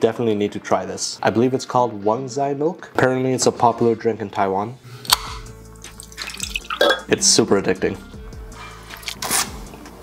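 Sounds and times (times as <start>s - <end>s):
background music with steady beat: 0.0s - 10.0s
can ring-pull cracking open: 5.1s - 7.0s
milk pouring into mug: 6.0s - 7.1s.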